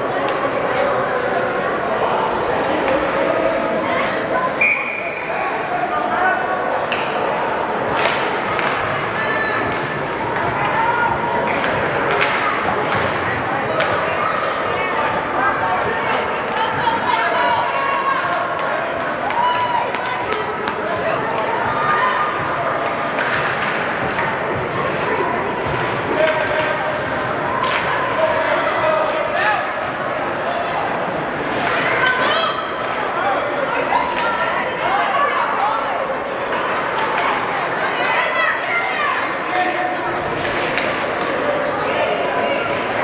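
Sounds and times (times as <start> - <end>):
hockey sticks and puck knocking: 7.9 - 8.8, 11.4 - 13.2, 23.1 - 24.4.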